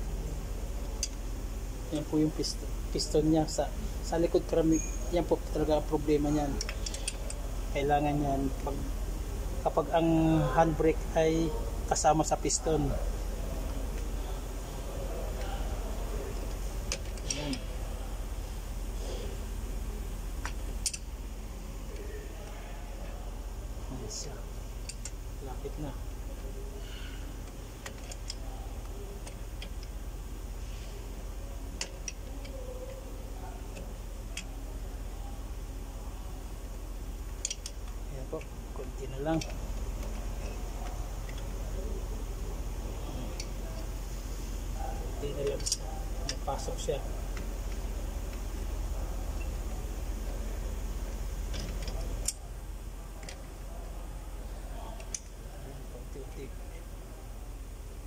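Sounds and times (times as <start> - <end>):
steady low hum: 0.0 - 58.0
tool clicking on brake caliper: 6.5 - 7.4, 24.8 - 25.2, 37.3 - 41.6, 45.4 - 48.6, 55.0 - 55.4
metallic clicks of wrench: 6.6 - 7.4, 20.4 - 21.1.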